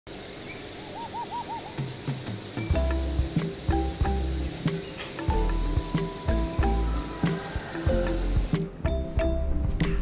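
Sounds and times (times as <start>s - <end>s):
steady background hiss: 0.1s - 10.0s
bird whistling call: 0.4s - 2.8s, 3.8s - 8.5s.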